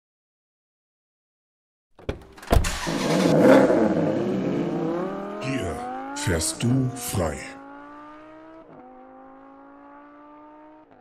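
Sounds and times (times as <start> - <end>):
car engine accelerating: 2.2 - 11.0.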